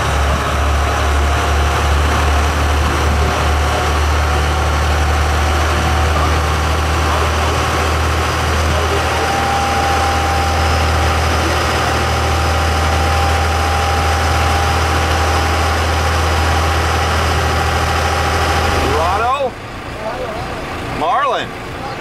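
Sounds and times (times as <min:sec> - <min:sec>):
boat engine humming: 0:00.0 - 0:22.0
rush of boat wake: 0:00.0 - 0:22.0
thin steady whine: 0:00.0 - 0:22.0.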